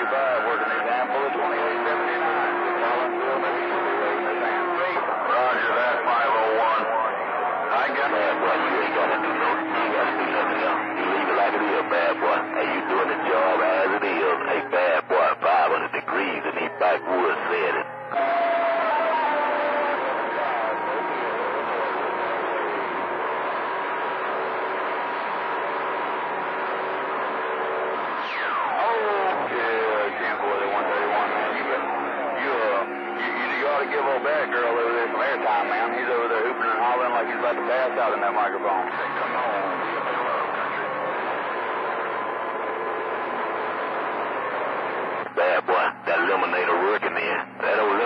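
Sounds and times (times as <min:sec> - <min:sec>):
garbled voices over radio: 0:00.0 - 0:17.9, 0:28.2 - 0:41.2, 0:45.2 - 0:48.0
radio static: 0:00.0 - 0:48.0.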